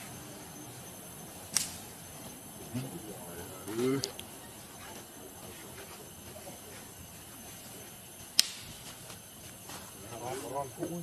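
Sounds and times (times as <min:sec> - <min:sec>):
thin high steady tone: 0:00.0 - 0:11.0
sharp click: 0:01.5 - 0:01.8, 0:08.4 - 0:08.7.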